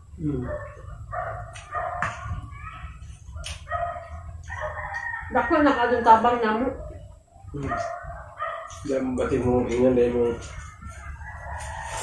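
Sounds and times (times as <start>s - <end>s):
rooster crowing: 3.7s - 6.8s, 10.4s - 12.0s.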